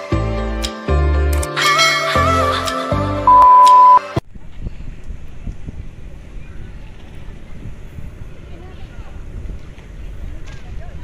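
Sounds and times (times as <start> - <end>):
wind buffeting microphone: 4.2 - 11.0.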